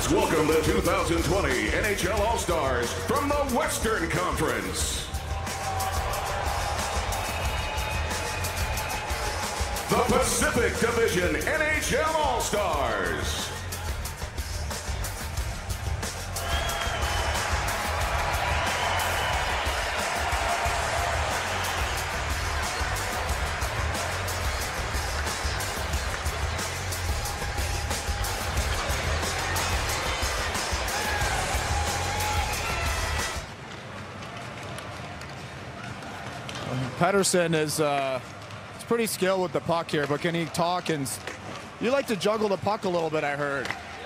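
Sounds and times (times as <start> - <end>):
arena crowd noise: 0.0 - 44.0
music with heavy pulsing beat: 5.0 - 33.5.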